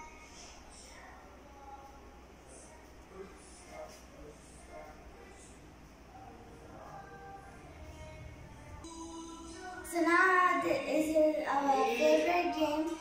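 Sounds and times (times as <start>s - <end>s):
song with high singing voice: 0.0s - 13.0s.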